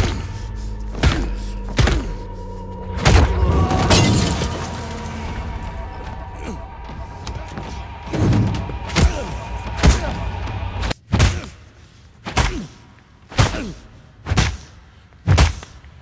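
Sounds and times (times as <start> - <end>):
man grunting and groaning: 0.0 - 2.6, 8.9 - 11.7, 12.3 - 14.0
film score: 0.0 - 16.0.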